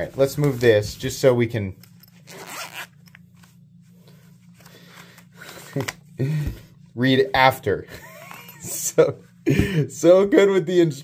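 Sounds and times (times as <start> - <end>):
zipper-like rasp: 2.3 - 2.9.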